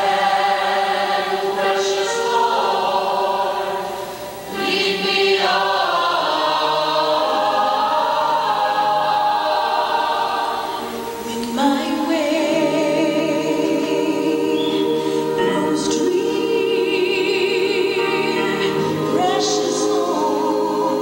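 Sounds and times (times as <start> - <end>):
choir singing held chords: 0.0 - 21.0.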